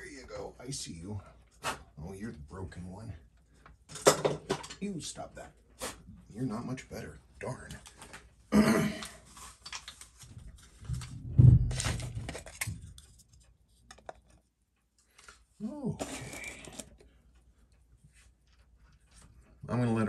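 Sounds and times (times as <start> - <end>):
plastic dome rustling and clatter: 9.2 - 14.5
dome thump: 11.2 - 11.8.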